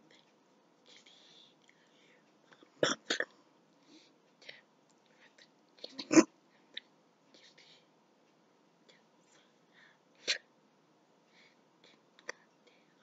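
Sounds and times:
faint breathy whispers: 0:00.0 - 0:02.6, 0:11.3 - 0:13.0.

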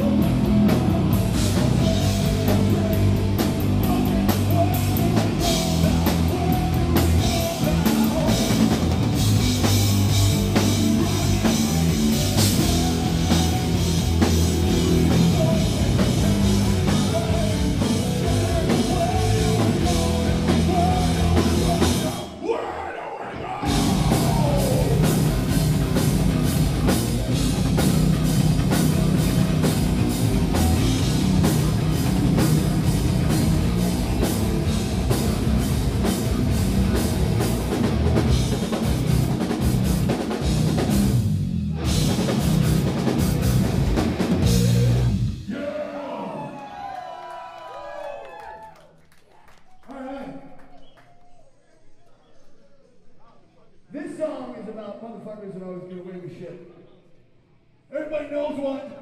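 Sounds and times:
person singing: 0:00.0 - 0:08.9, 0:10.5 - 0:22.4, 0:23.3 - 0:25.6
fast drumming: 0:00.0 - 0:22.2, 0:23.6 - 0:45.5
distorted guitars: 0:00.0 - 0:22.4, 0:23.3 - 0:45.6.

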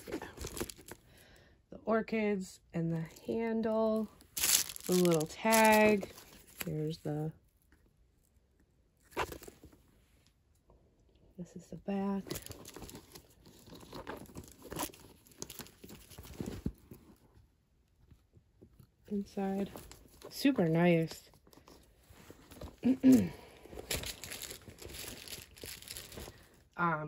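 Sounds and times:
leather strap and plastic rustling: 0:00.0 - 0:01.1, 0:03.9 - 0:07.8, 0:09.0 - 0:10.2, 0:12.0 - 0:26.8.

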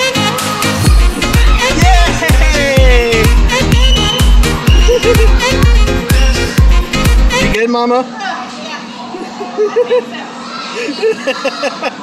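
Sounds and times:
children chattering and calling out: 0:00.7 - 0:02.6, 0:03.2 - 0:06.9, 0:08.0 - 0:12.0.

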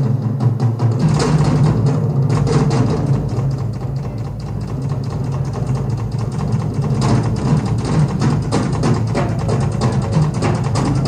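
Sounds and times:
fast drum roll: 0:00.0 - 0:11.0.

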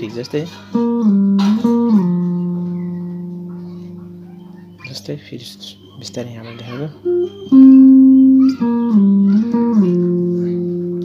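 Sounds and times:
guitar note ringing: 0:00.7 - 0:11.0.

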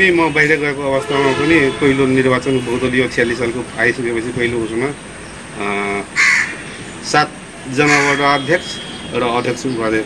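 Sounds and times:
crow cawing: 0:06.1 - 0:06.9, 0:07.8 - 0:08.4.

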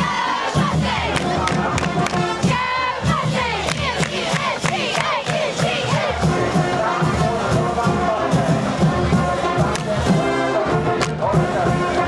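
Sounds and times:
crowd chanting and shouting: 0:00.0 - 0:12.0
steady hand claps: 0:01.1 - 0:02.3, 0:03.6 - 0:05.8, 0:09.7 - 0:09.9.

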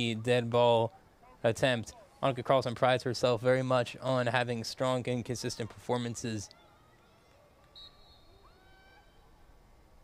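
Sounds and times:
faint distant voices: 0:00.0 - 0:10.0
referee's whistle: 0:07.6 - 0:09.2.

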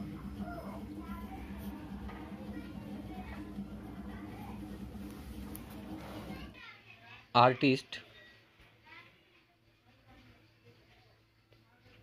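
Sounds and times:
steady low hum: 0:00.0 - 0:06.6.

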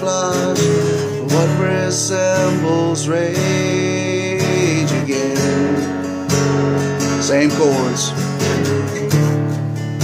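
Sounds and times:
man singing: 0:00.0 - 0:06.2, 0:07.2 - 0:08.9
acoustic guitar strumming chords: 0:00.0 - 0:10.0.

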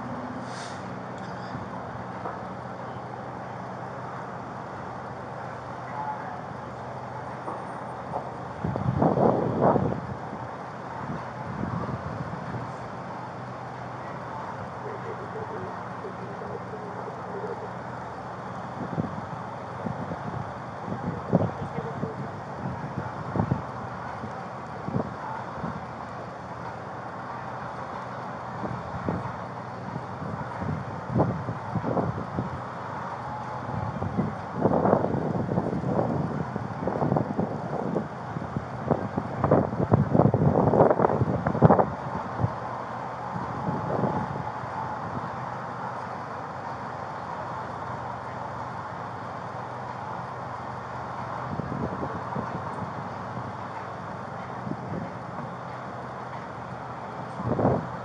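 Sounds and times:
vehicles idling: 0:00.0 - 0:58.0
wind on microphone: 0:08.6 - 0:10.4, 0:33.6 - 0:42.6, 0:51.5 - 0:53.6, 0:57.4 - 0:58.0.

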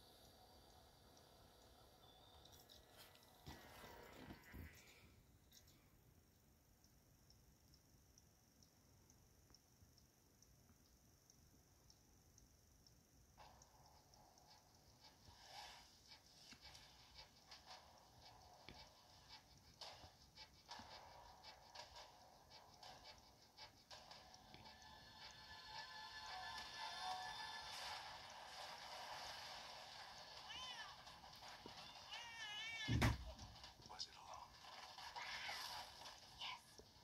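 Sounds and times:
trailer music through small speaker: 0:13.4 - 0:37.0.

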